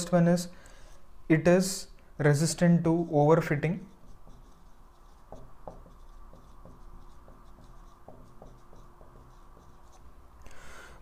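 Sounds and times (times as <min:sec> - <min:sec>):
marker writing on a whiteboard: 0:02.9 - 0:10.2.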